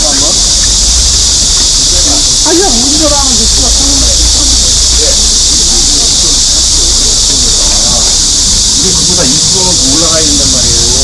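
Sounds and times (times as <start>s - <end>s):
cicadas chorus: 0.0s - 11.0s
low background rumble: 0.0s - 11.0s.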